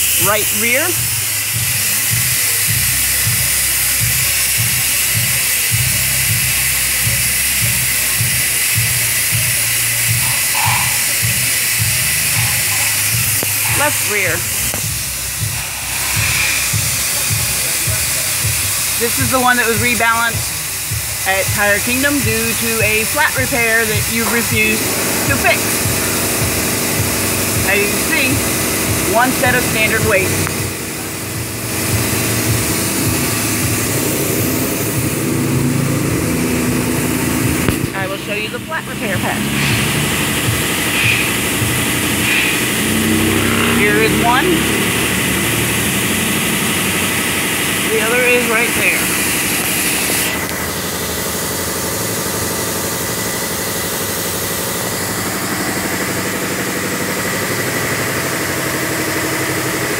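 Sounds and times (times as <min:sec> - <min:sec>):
steady hiss: 0:00.0 - 0:35.0, 0:39.5 - 0:43.8
machinery rumbling: 0:00.0 - 0:59.9.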